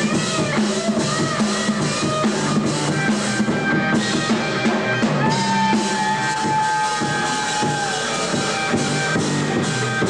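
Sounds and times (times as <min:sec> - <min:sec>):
bass guitar: 0:00.0 - 0:10.0
drums: 0:00.0 - 0:10.0.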